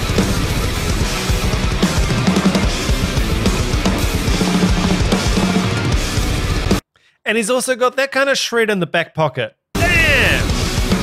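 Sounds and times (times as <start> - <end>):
distorted metal band backing: 0.0 - 6.8, 9.8 - 11.0
drum kit playing: 0.0 - 6.8, 9.8 - 11.0.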